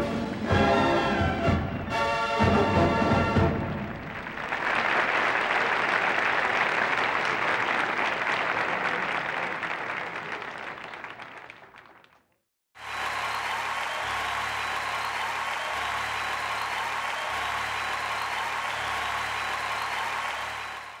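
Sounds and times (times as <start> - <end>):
audience applause: 0.0 - 21.0.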